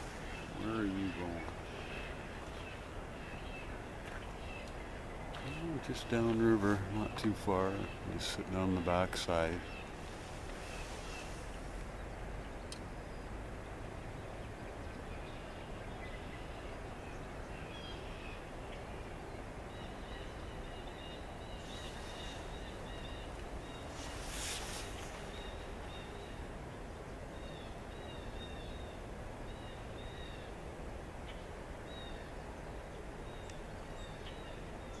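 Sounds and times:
outdoor background hiss: 0.0 - 35.0.

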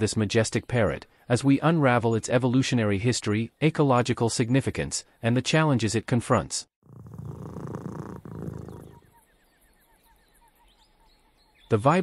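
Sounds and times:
cat purring: 6.8 - 9.1.

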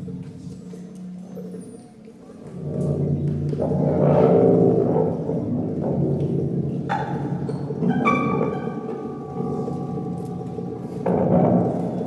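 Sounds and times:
dense low drone: 3.0 - 12.0
high held tones: 7.8 - 12.0.

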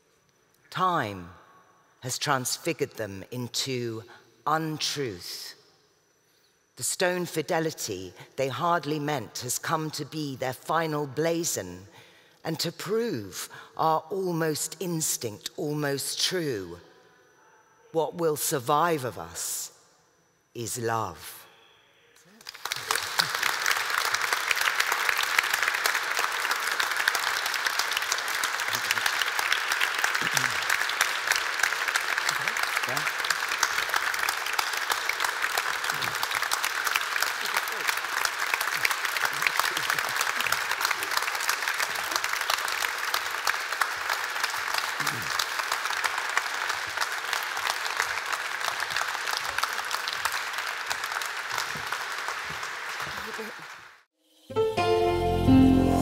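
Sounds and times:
audience applauding: 22.4 - 54.0.

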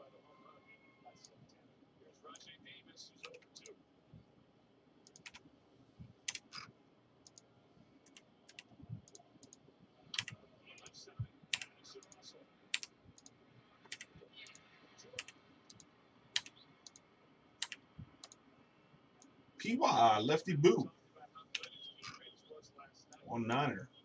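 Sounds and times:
computer mouse clicks: 5.0 - 5.4, 6.3 - 9.6, 10.2 - 10.9, 11.5 - 14.6, 15.2 - 17.0, 17.6 - 18.4.

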